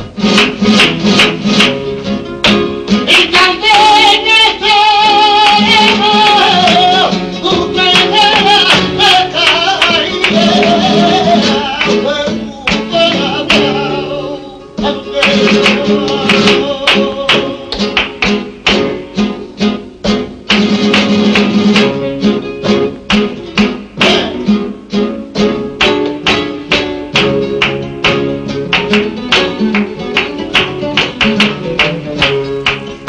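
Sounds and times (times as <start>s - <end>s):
sharp percussive strikes: 0.0s - 3.1s, 15.2s - 19.4s, 20.0s - 24.6s, 25.7s - 33.0s
flamenco acoustic guitar: 0.0s - 33.0s.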